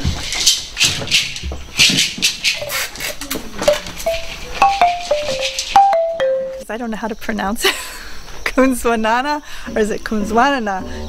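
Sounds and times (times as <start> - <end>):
shaker rattling in rhythm: 0.0 - 6.7.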